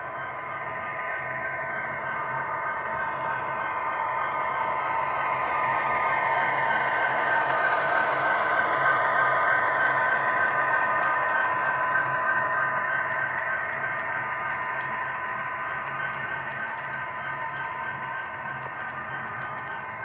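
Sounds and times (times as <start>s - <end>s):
model train motor whining hum: 0.0s - 20.0s
wheels clattering on rails: 0.0s - 20.0s.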